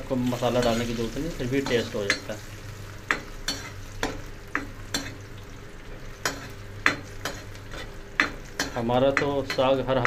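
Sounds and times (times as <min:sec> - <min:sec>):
onions sizzling in hot oil: 0:00.0 - 0:10.0
metal spoon scraping a frying pan: 0:03.1 - 0:05.2, 0:06.2 - 0:09.8.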